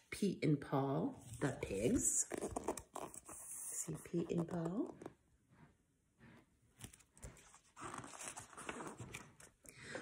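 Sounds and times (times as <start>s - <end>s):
book handling rustle: 6.8s - 9.6s.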